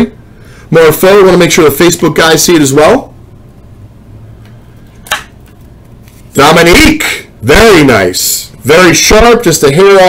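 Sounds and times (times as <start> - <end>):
low room hum: 0.0 - 10.0
trading cards rustling: 4.9 - 6.4.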